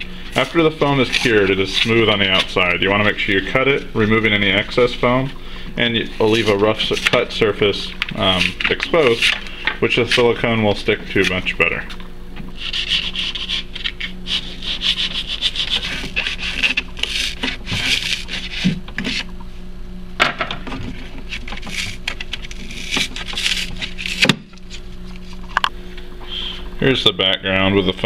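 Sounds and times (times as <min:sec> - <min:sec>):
knife sawing through foam: 0:12.6 - 0:19.2, 0:21.2 - 0:24.2.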